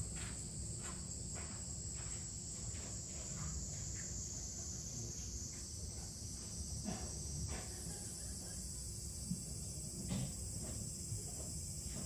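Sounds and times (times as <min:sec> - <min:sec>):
high-pitched insect chorus: 0:00.1 - 0:12.0.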